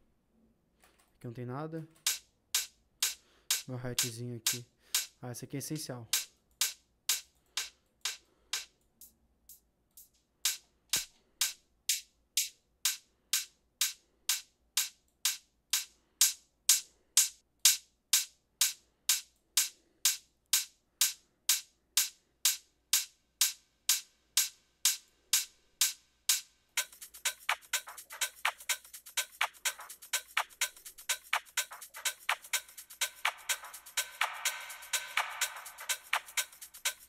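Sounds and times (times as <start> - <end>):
electronic hi-hat loop: 2.0 - 37.0.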